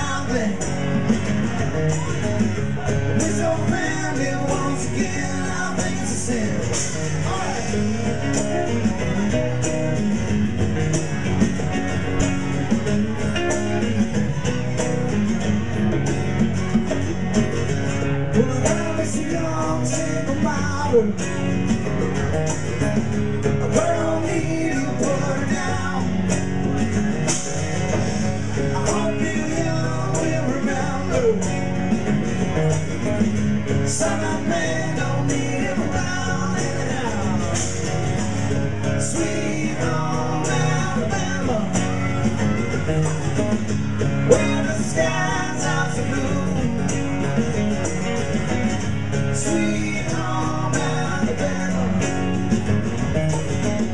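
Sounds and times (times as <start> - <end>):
person singing: 0.0 - 8.8, 18.2 - 21.7, 23.5 - 26.9, 28.0 - 32.6, 33.8 - 47.8, 49.2 - 53.9
live rock band: 0.0 - 53.9
steady drum beat: 0.0 - 53.9
strummed acoustic guitars: 0.0 - 53.9.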